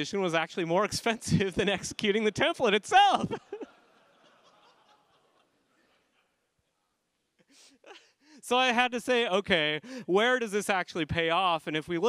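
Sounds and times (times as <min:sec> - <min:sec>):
faint audience laughter: 0:03.3 - 0:06.4.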